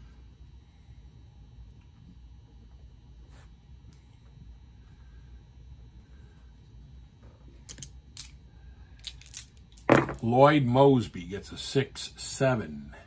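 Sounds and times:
dice rolling into a tray: 9.0 - 10.2
handling at a tabletop: 9.0 - 10.2.

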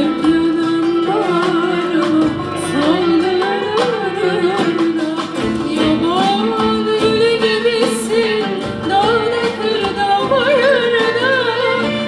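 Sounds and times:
string ensemble: 0.0 - 12.0
woman singing: 0.0 - 12.0.

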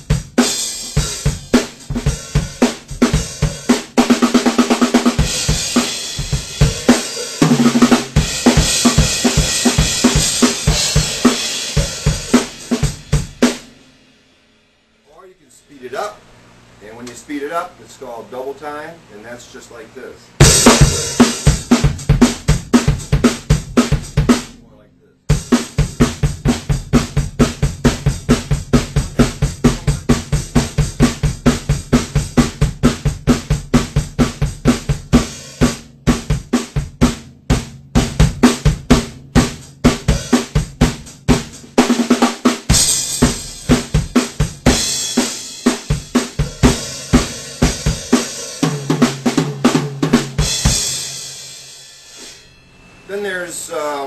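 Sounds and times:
rock drum kit beat: 0.0 - 15.2, 20.3 - 53.2
cymbal wash: 50.3 - 54.0.

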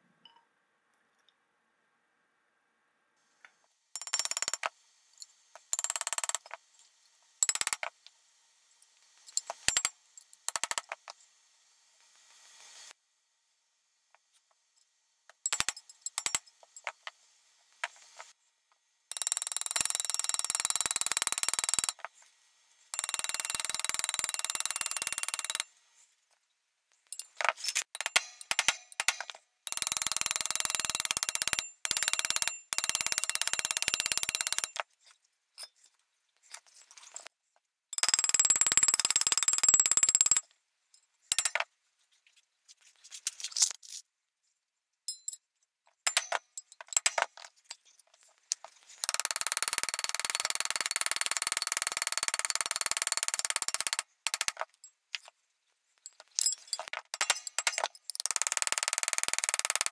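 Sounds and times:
metal clicking and clinking: 56.0 - 58.4.

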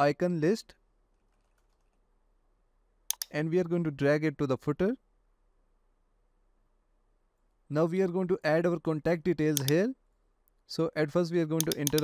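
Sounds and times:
faint computer keyboard typing: 1.1 - 2.0, 3.1 - 3.4, 11.6 - 12.0.

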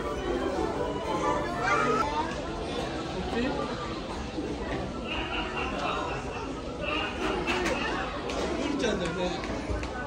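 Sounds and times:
indistinct chatter of people: 0.0 - 10.0.

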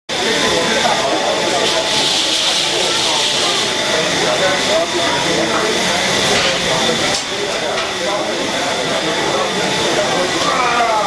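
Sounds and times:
steam engine hissing: 0.1 - 11.0.

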